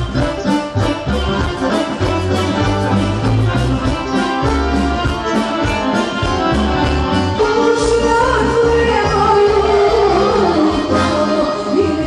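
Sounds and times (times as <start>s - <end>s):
drum kit beat: 0.0s - 11.2s
accordion: 0.0s - 12.0s
keyboard bass: 0.0s - 12.0s
violin: 0.0s - 12.0s.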